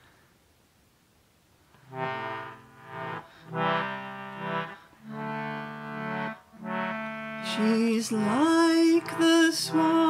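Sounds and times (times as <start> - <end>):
concertina chords: 1.8 - 10.0.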